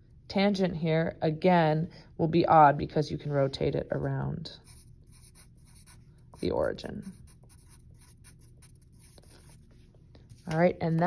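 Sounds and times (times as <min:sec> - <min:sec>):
pencil writing on paper: 0:04.6 - 0:09.6.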